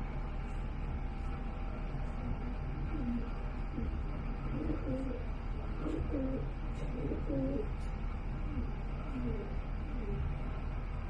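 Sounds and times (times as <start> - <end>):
steady low hum: 0.0 - 11.0
bird cooing: 2.8 - 10.4.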